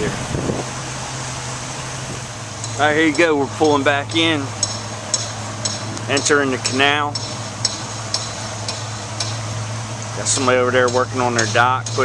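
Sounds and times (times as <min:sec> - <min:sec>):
boat engine humming: 0:00.0 - 0:12.0
wind and water hiss: 0:00.0 - 0:12.0.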